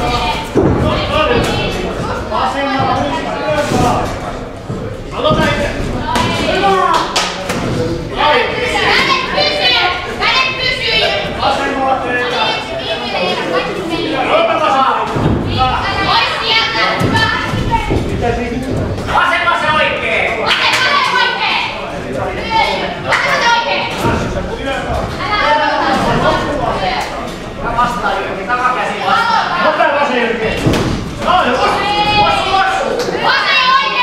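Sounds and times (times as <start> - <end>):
voices shouting in hall: 19.1 - 21.8, 31.1 - 34.0
thud: 30.6 - 31.4.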